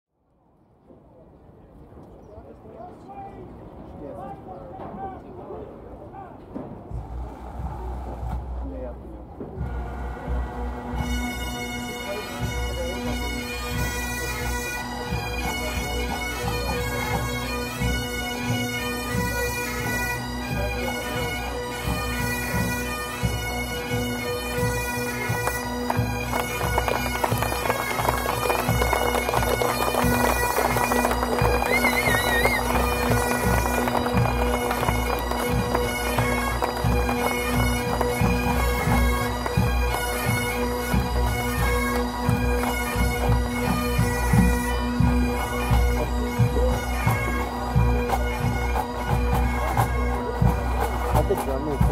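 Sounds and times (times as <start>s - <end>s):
bagpipe bands playing: 9.6s - 51.9s.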